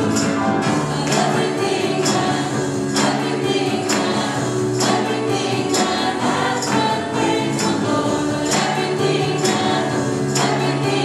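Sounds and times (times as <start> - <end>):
group singing upbeat praise song: 0.0 - 11.0
piano guitar and keyboard: 0.0 - 11.0.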